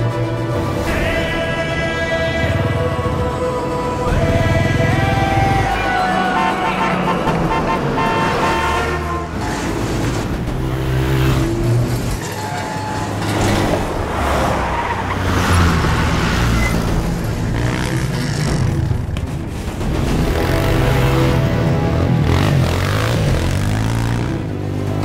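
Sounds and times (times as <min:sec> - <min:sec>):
street traffic noise: 0:00.0 - 0:25.0.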